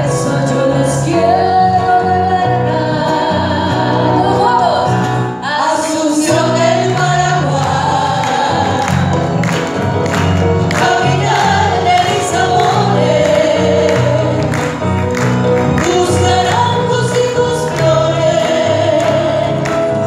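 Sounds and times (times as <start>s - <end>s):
women singing folk song: 0.0s - 9.5s, 10.6s - 14.8s, 15.7s - 20.0s
folk band playing: 6.3s - 20.0s.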